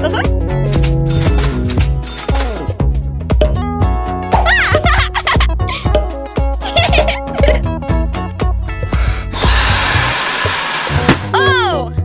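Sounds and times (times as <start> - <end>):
cartoon background music: 0.0 - 12.0
air hissing out: 8.9 - 11.4.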